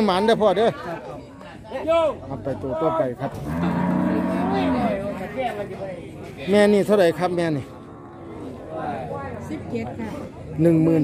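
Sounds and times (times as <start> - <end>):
cow mooing: 3.4 - 5.0.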